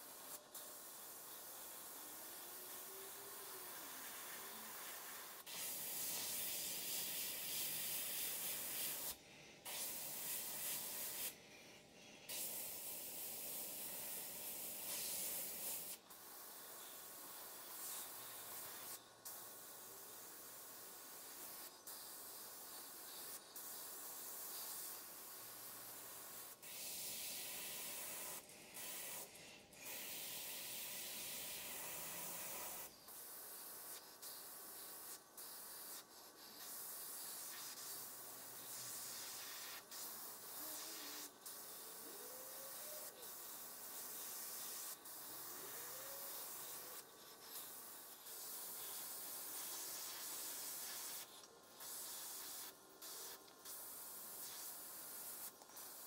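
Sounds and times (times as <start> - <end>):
airbrush air hiss: 0.0 - 56.0.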